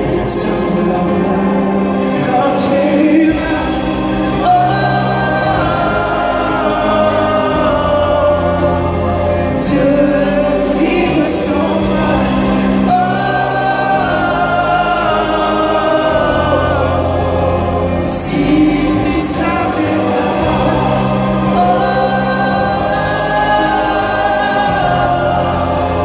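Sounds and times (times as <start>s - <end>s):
choir singing: 0.0s - 26.0s
string orchestra: 0.0s - 26.0s.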